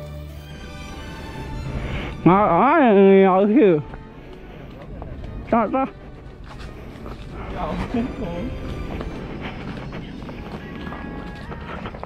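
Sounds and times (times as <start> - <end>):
footsteps on dirt trail: 0.6 - 12.0
bike rattling and tyre noise: 5.8 - 12.0.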